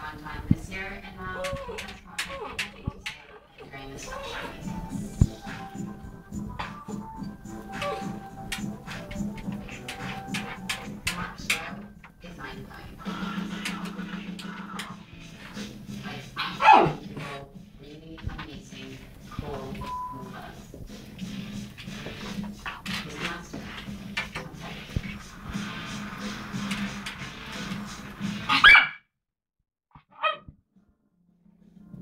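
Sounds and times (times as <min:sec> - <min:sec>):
puppy barking: 0:07.6 - 0:08.2, 0:16.4 - 0:17.2, 0:28.5 - 0:29.0, 0:30.0 - 0:30.5.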